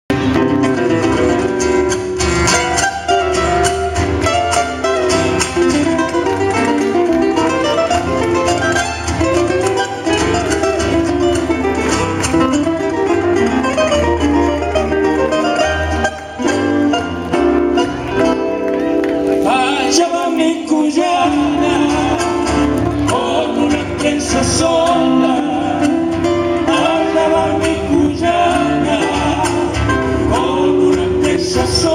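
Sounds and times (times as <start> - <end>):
acoustic guitars strumming: 0.1 - 31.9.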